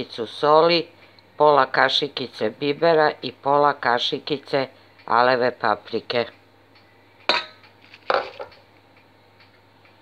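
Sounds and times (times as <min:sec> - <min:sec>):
metal spoon clinking on steel bowl: 0:07.3 - 0:08.5.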